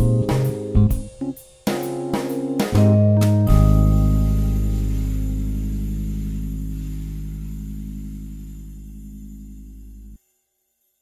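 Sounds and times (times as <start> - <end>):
low chord with pulsing note: 2.9 - 10.2.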